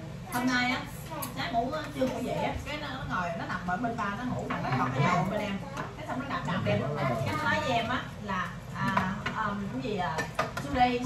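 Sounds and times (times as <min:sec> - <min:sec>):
conversation: 0:00.0 - 0:11.0.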